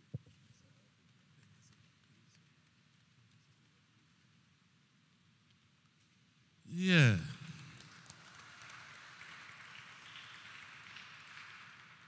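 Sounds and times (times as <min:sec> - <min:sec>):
faint applause: 0:06.7 - 0:12.0.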